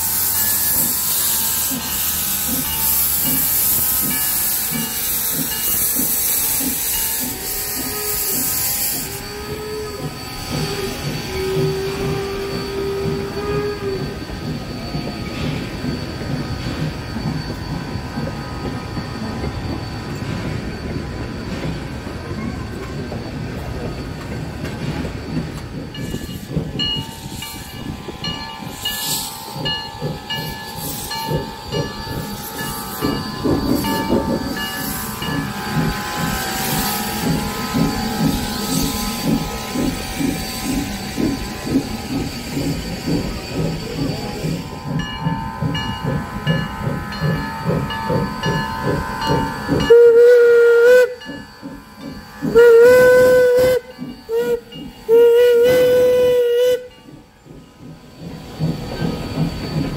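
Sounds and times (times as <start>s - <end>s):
steam whistle blasts: 0.0s - 15.6s, 44.0s - 57.0s
steam locomotive chuffing: 0.0s - 59.9s
train cars rolling on rails: 0.0s - 59.9s.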